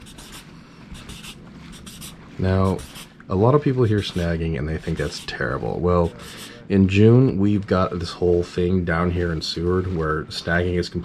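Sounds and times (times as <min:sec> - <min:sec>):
marker pen drawing on board: 0:00.0 - 0:10.8.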